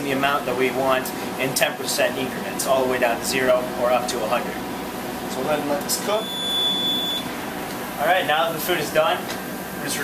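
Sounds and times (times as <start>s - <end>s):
microwave oven beep: 5.9s - 7.4s.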